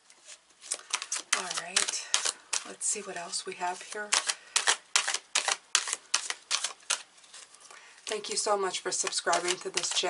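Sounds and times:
cards being shuffled by hand: 0.2s - 2.8s, 3.8s - 10.0s.

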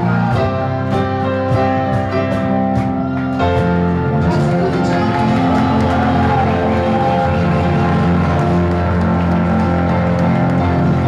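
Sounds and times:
loud pop music with keyboard chords: 0.0s - 11.0s.

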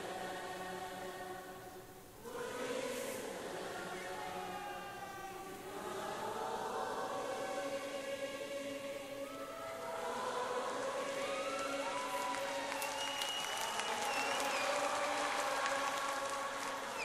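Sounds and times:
choral singing: 0.0s - 17.0s
audience applause and cheering: 10.0s - 17.0s.

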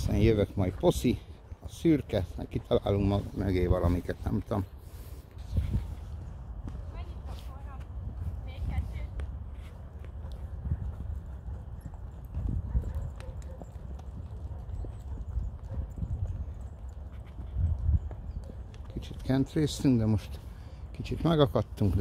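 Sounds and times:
horse hoofbeats on dirt: 6.7s - 20.3s.

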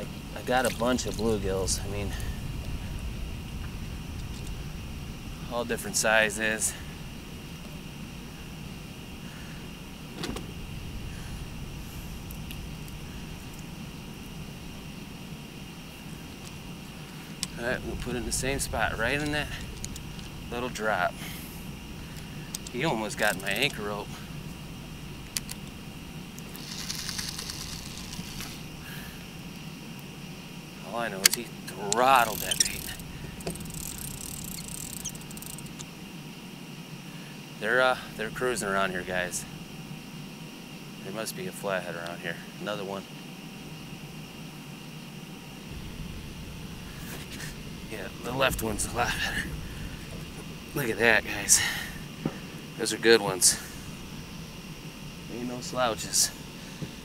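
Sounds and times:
faint high whine: 0.0s - 57.0s
insects chirping: 0.0s - 57.0s
low rumbling background noise: 0.0s - 57.0s
steady low hum: 0.0s - 57.0s
faint ticks: 3.6s - 4.6s, 12.2s - 14.4s, 16.3s - 18.2s, 19.2s - 20.4s, 22.0s - 24.6s, 25.2s - 30.1s, 31.2s - 36.0s.

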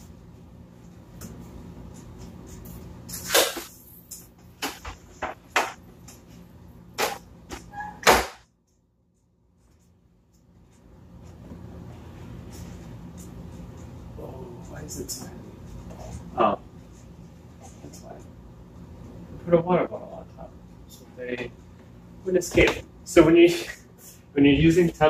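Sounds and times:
low room hum: 0.0s - 25.0s.

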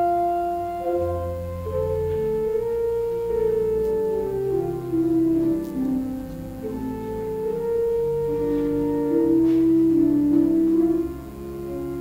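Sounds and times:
pipe organ playing slow chords: 0.0s - 12.0s.

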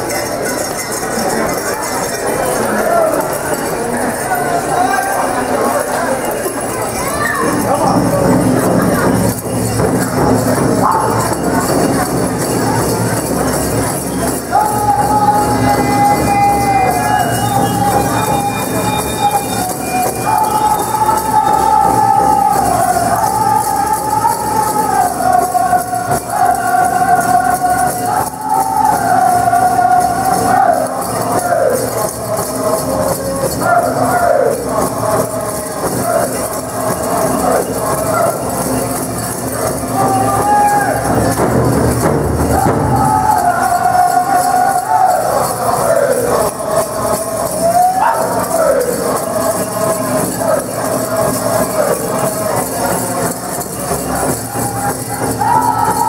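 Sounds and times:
jingling bells: 0.0s - 56.0s
group singing high voices: 2.6s - 56.0s
steady drum beat: 39.6s - 53.2s.

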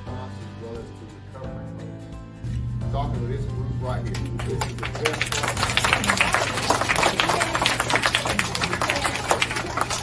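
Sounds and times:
young children clapping: 4.1s - 10.0s.

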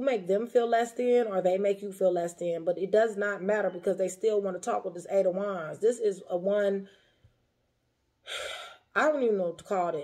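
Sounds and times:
woman sharp breath in: 8.2s - 8.9s.

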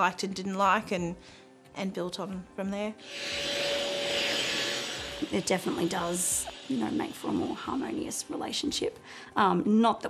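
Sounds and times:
vacuum cleaner on rug: 3.0s - 8.1s.

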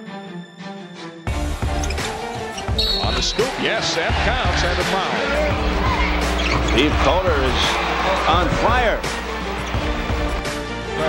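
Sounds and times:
music: 0.0s - 11.0s
crowd noise: 1.8s - 11.0s.

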